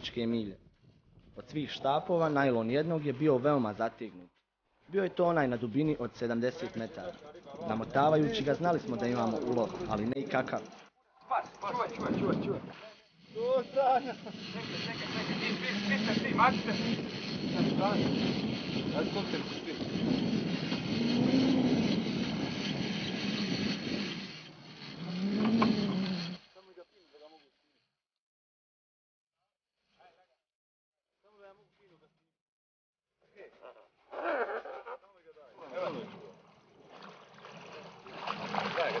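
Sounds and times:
wind: 0:00.0 - 0:27.8, 0:33.3 - 0:39.0
sea noise: 0:07.8 - 0:26.4, 0:35.6 - 0:39.0
men calling out: 0:33.6 - 0:36.1.

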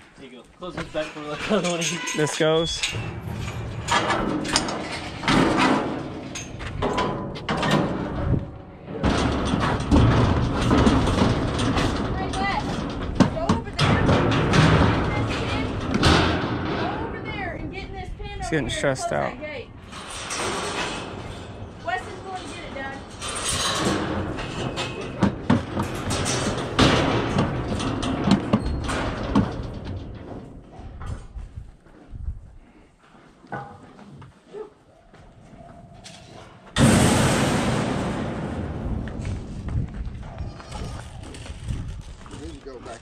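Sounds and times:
steel gates banging: 0:00.9 - 0:17.6, 0:19.8 - 0:30.6.

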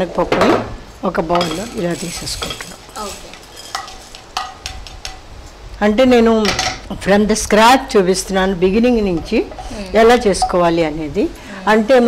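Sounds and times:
lentils rattling into bowl: 0:01.4 - 0:04.4
spatula scraping frying pan: 0:01.4 - 0:05.2.

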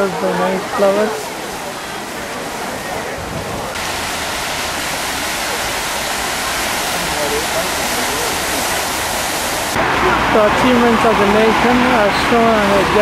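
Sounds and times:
fountain water splashing: 0:00.0 - 0:13.0.

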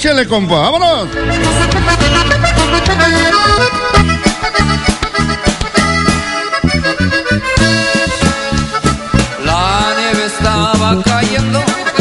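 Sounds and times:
live band playing: 0:00.0 - 0:12.0
accordion melody: 0:00.3 - 0:12.0.

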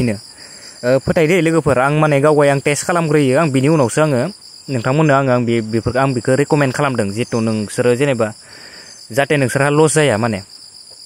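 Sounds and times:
man narrating: 0:00.8 - 0:08.4, 0:09.1 - 0:10.5.

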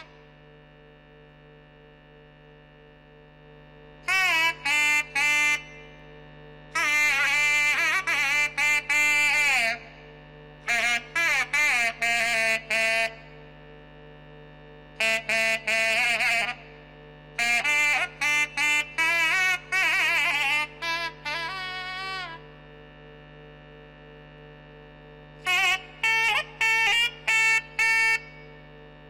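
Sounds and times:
steady drone: 0:02.3 - 0:29.0
nadaswaram melody: 0:04.0 - 0:06.1, 0:06.7 - 0:10.0, 0:10.6 - 0:13.5, 0:15.0 - 0:16.8, 0:17.4 - 0:22.6, 0:25.4 - 0:28.7.

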